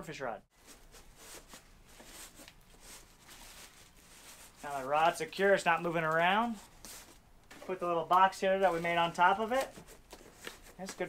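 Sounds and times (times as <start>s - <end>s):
fabric scuffing against cardboard: 0.6s - 10.8s.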